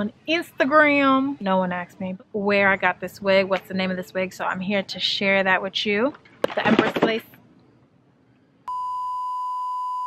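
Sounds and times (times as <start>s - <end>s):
steady electronic beep: 8.7s - 10.0s.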